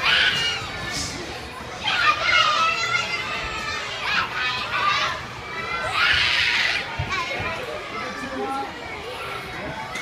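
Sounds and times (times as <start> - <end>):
young children calling and chattering: 0.0 - 10.0.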